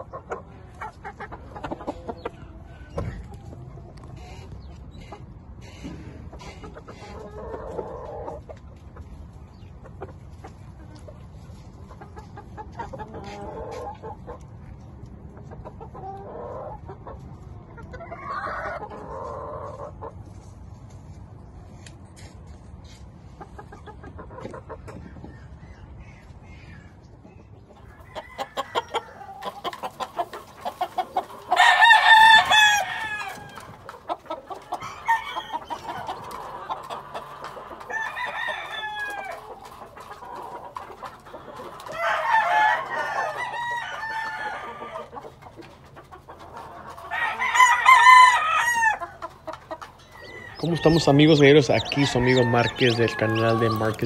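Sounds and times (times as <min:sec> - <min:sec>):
rooster clucking: 0:00.0 - 0:09.1, 0:11.8 - 0:14.5, 0:27.7 - 0:54.0
roosters crowing: 0:27.8 - 0:45.4, 0:46.4 - 0:54.0.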